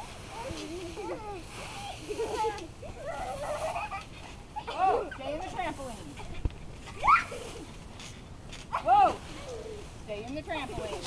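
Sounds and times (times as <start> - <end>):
young children squealing: 7.0 - 7.6.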